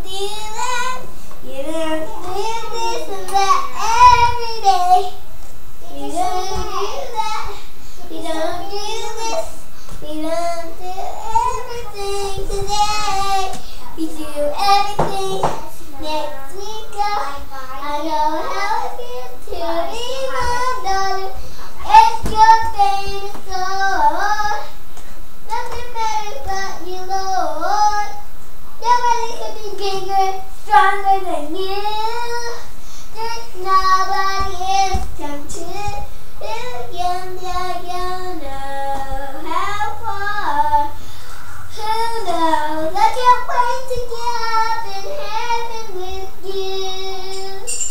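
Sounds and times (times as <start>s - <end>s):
girl singing: 0.0s - 24.8s, 25.5s - 41.0s, 41.6s - 47.9s.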